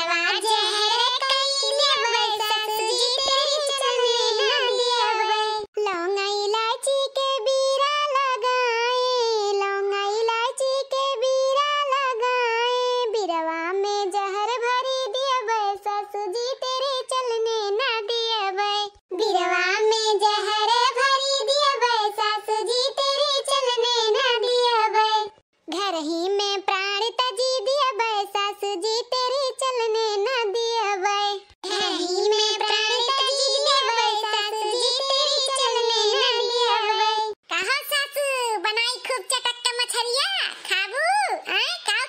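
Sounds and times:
high-pitched cartoon voice singing: 0.0s - 42.0s.

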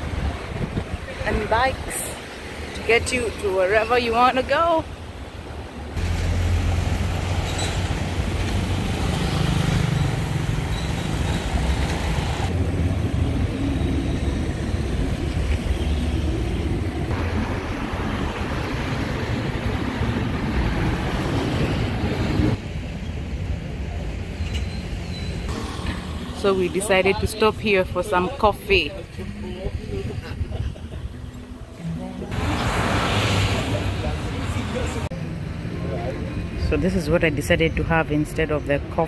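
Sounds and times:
cars passing with low rumble: 0.0s - 39.0s.

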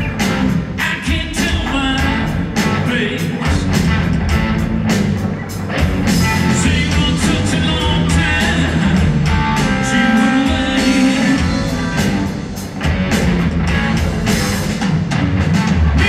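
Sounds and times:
live blues-rock band playing: 0.0s - 16.0s.

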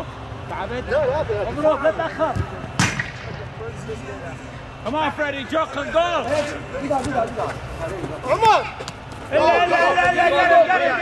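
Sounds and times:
soccer ball kick smack: 2.3s - 3.3s.

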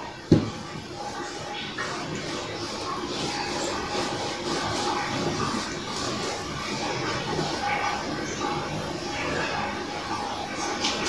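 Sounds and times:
duster rubbing on whiteboard: 2.2s - 7.5s.

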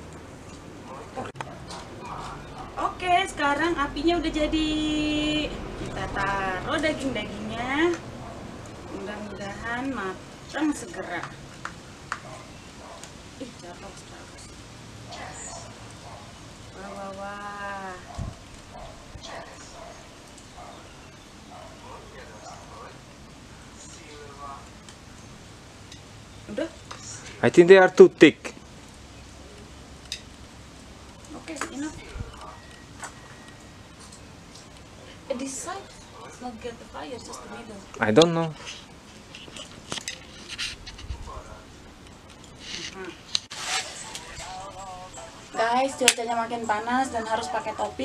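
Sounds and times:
faint indistinct voices: 0.8s - 3.8s, 31.3s - 48.0s.

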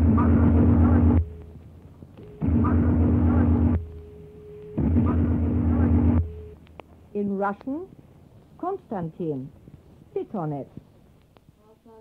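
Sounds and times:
heavy hum and noise: 0.0s - 10.8s.

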